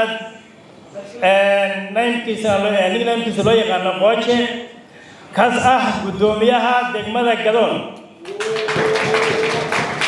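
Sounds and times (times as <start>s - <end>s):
audience clapping in rhythm: 8.2s - 10.0s.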